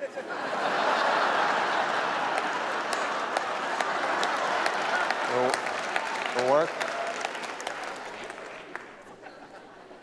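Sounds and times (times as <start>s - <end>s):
audience applauding: 0.4s - 9.2s.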